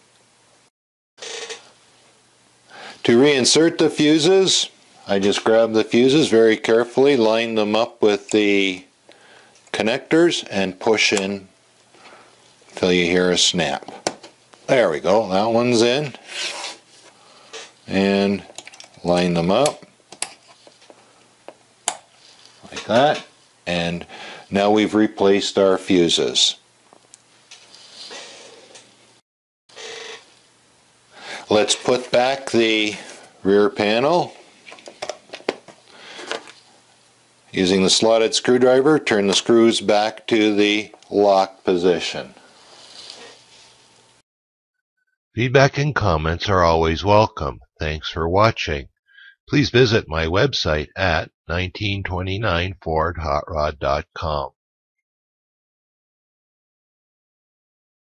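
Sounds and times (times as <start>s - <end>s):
soft scraping and rustling: 22.2s - 23.2s, 27.6s - 29.0s, 42.5s - 44.1s
person speaking: 31.5s - 34.3s, 45.4s - 54.6s.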